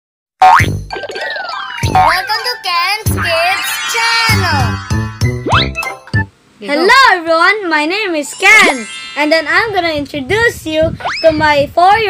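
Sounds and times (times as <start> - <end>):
boing-like hit with rising pitch: 0.4 - 2.1, 4.8 - 5.9
sliding tones falling in pitch: 0.4 - 6.3, 8.2 - 10.4
animated logo intro music: 3.1 - 6.3, 8.4 - 10.0.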